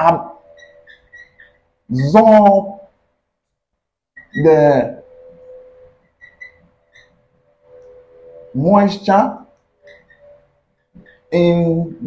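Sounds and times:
marker squeaking on whiteboard: 0:00.0 - 0:02.4, 0:03.4 - 0:12.0
faint steady tone: 0:00.0 - 0:12.0.

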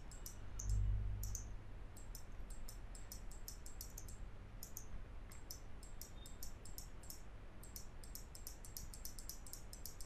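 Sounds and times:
computer mouse clicking: 0:00.0 - 0:10.0
faint low hum: 0:00.0 - 0:10.0.

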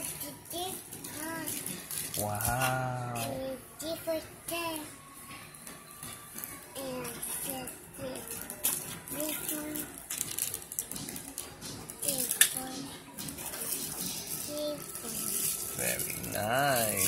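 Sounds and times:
plastic packaging crinkling: 0:13.6 - 0:17.0.

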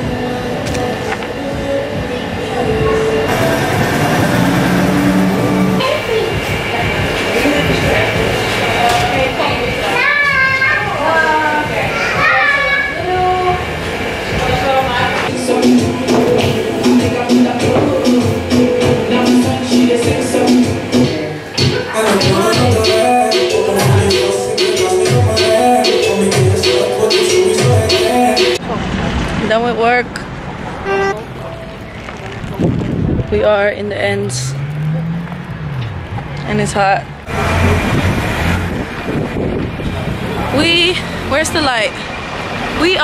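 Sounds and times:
street traffic: 0:00.0 - 0:43.0
car horn toot: 0:30.8 - 0:31.3
high-pitched gliding voices: 0:30.8 - 0:31.8.

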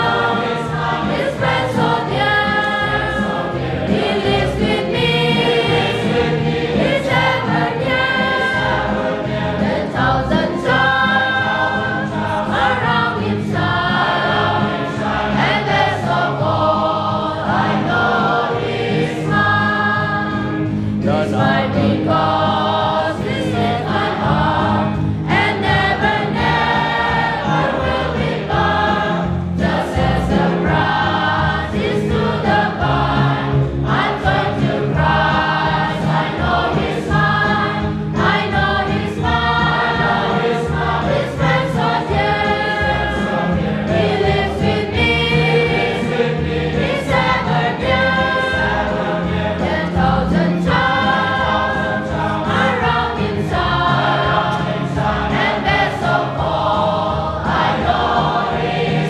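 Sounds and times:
congregation singing a hymn: 0:00.0 - 0:59.0
low accompaniment: 0:00.0 - 0:59.0.

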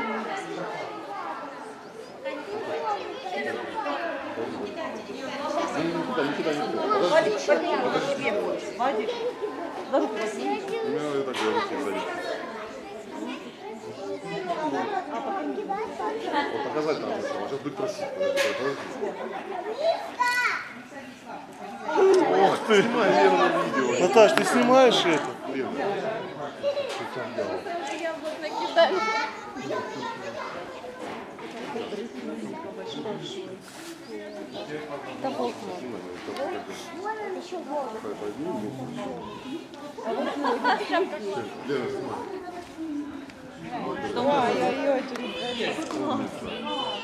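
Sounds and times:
indistinct chatter of voices: 0:00.0 - 0:47.0.

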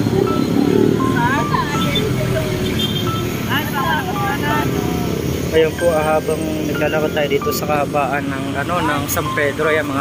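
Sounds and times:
low hum of road traffic: 0:00.0 - 0:10.0
voices talking: 0:00.0 - 0:10.0.

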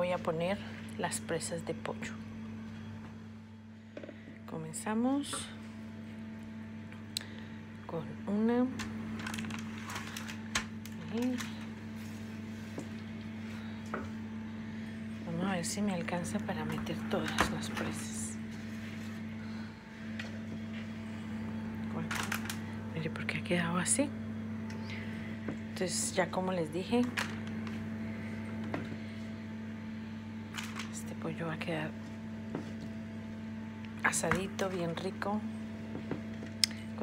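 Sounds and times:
low electrical hum: 0:00.0 - 0:37.0.

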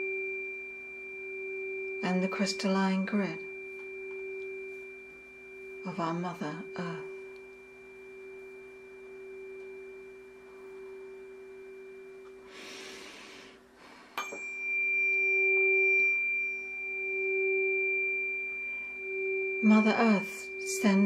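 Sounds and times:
tuning fork struck with tap: 0:00.0 - 0:12.5, 0:14.2 - 0:21.0
tuning forks ringing: 0:00.0 - 0:21.0
breath: 0:12.4 - 0:14.2.

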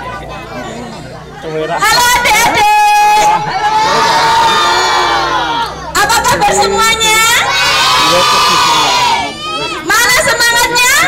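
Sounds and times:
children shouting in unison: 0:02.1 - 0:11.0.

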